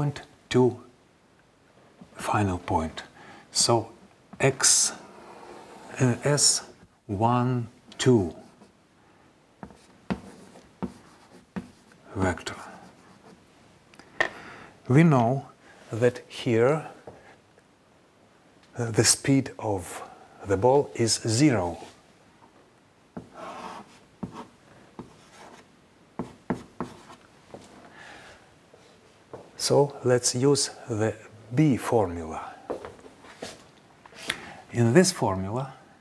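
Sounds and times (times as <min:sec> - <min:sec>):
chalk tapping on blackboard: 0:09.6 - 0:12.0, 0:23.2 - 0:25.6, 0:26.2 - 0:27.2.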